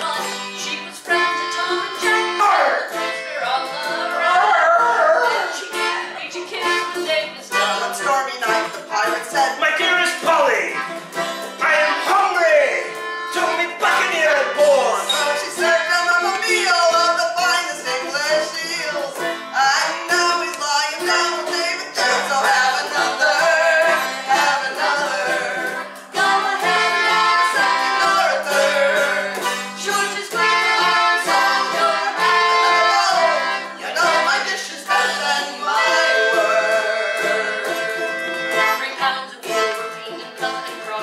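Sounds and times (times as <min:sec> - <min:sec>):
acoustic guitar: 0:00.0 - 0:41.0.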